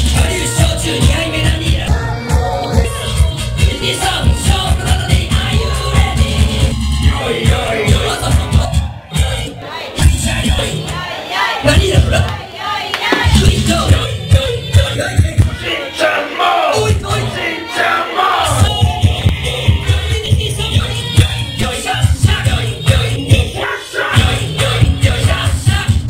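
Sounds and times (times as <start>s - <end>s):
heavy bass beat: 0.0s - 11.0s, 11.6s - 12.4s, 13.0s - 15.7s, 16.8s - 17.4s, 18.4s - 23.6s, 24.2s - 26.0s
crowd voices: 0.0s - 26.0s
loud club music: 0.0s - 26.0s
vocal: 0.0s - 26.0s.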